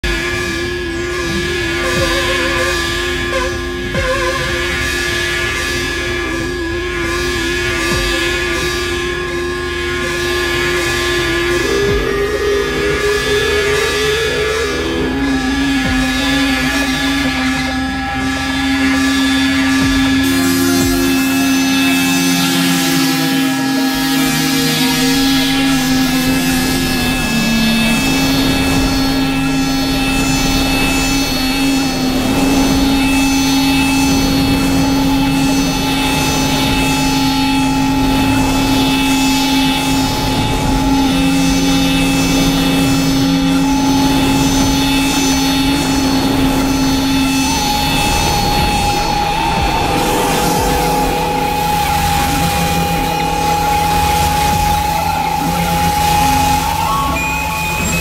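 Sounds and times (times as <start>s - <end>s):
high pulsing pattern: 0.0s - 58.0s
sustained electronic drone tones: 0.0s - 58.0s.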